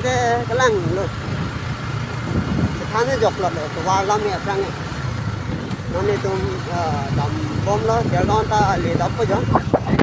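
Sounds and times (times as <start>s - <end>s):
man talking: 0.0s - 1.2s, 2.7s - 4.8s, 5.9s - 10.0s
motorcycle engine running: 0.0s - 10.0s.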